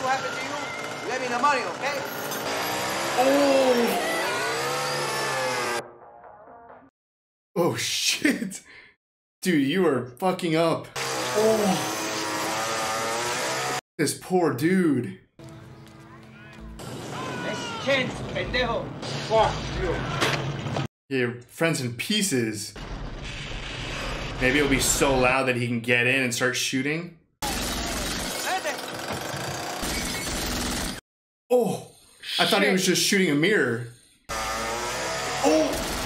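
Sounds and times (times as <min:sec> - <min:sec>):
chainsaw engine running: 0:00.0 - 0:05.8, 0:11.0 - 0:13.8, 0:27.5 - 0:31.0, 0:34.3 - 0:36.0
people shouting: 0:03.2 - 0:04.6, 0:16.0 - 0:18.3, 0:35.4 - 0:35.9.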